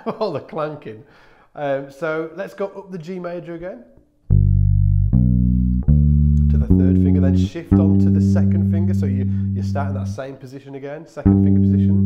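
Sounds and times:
electric bass notes: 4.2 - 10.3, 11.2 - 12.0.

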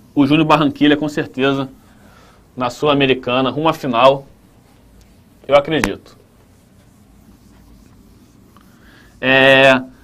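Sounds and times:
marker rubbing on whiteboard: 2.7 - 10.0.

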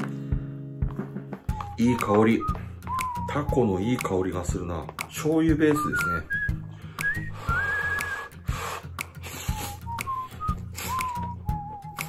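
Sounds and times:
whistled melody music: 0.0 - 12.0
man slurping noodles: 7.6 - 11.2.

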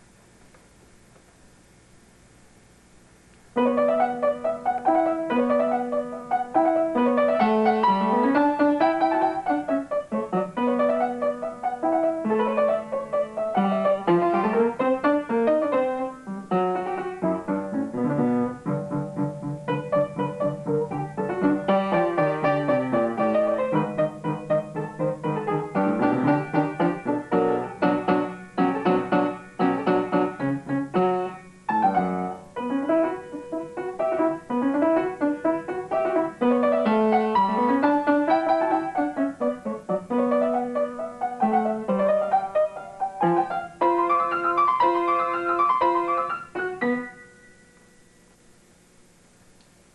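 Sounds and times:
solo piano piece: 3.5 - 48.4.

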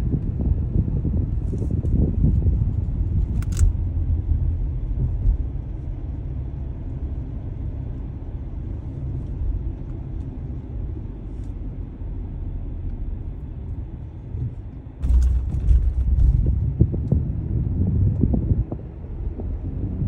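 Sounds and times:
car road and engine rumble: 0.0 - 20.0.

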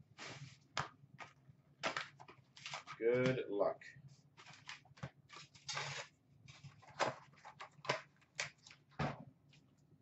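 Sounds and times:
cardboard box and foil packs rustling: 1.8 - 3.2, 4.4 - 8.0.

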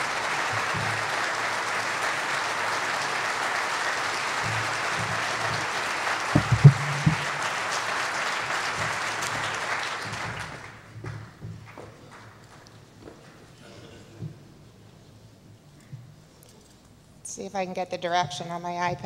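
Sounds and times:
audience applauding: 0.0 - 13.6.

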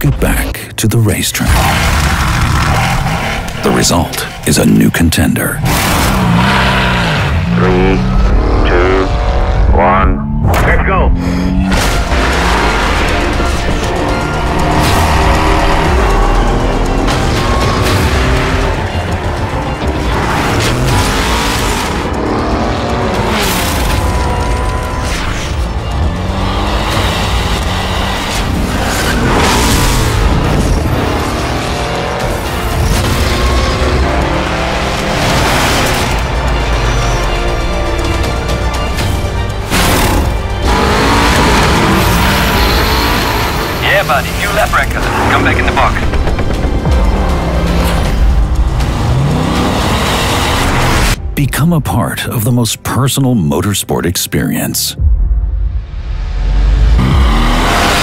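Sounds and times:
soundtrack music: 0.0 - 58.0
race car engine revving: 1.4 - 51.4, 56.7 - 58.0.

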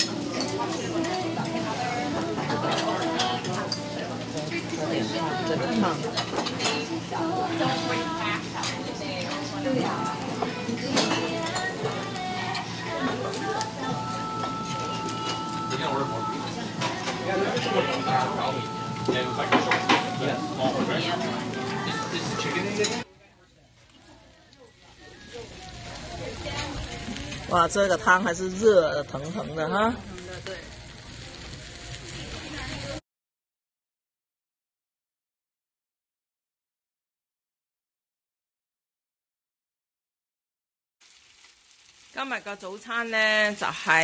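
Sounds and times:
background music: 0.0 - 23.1
murmur of voices: 0.0 - 33.0
rice sizzling in stone bowl: 0.0 - 33.0, 41.0 - 44.0.

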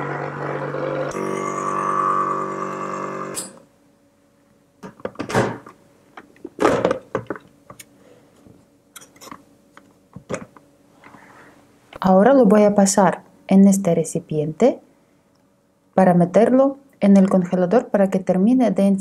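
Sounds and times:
ice cream maker motor humming: 0.0 - 3.6.

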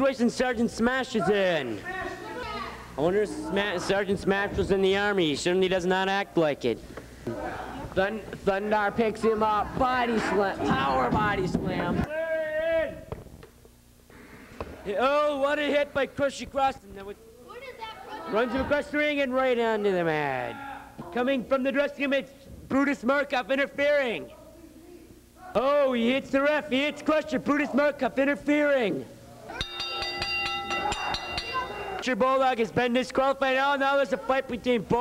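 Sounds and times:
faint room noise and hum: 0.0 - 35.0
ring bell struck rapidly: 29.5 - 32.1.

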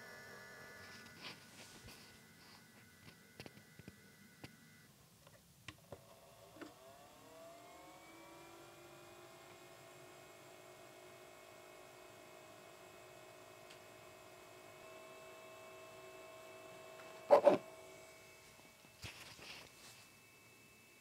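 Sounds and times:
projector motor whine: 0.0 - 4.9, 5.9 - 21.0.

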